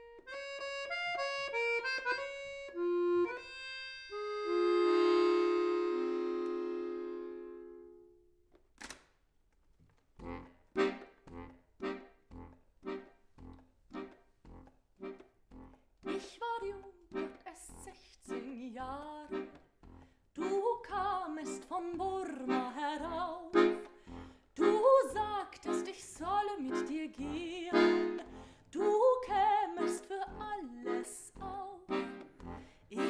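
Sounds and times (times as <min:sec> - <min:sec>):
button accordion chords: 0:00.0 - 0:08.0, 0:10.2 - 0:33.0.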